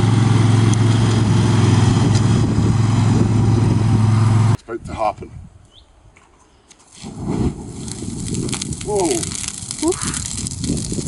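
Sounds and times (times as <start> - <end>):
fire igniting whoosh: 6.9 - 11.0
flames roaring and crackling: 6.9 - 11.0
liquid splashing: 7.0 - 11.0.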